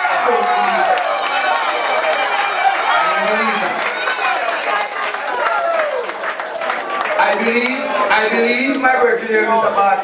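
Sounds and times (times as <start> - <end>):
voices: 0.0 - 9.2
hand shaker rattling: 0.6 - 7.6.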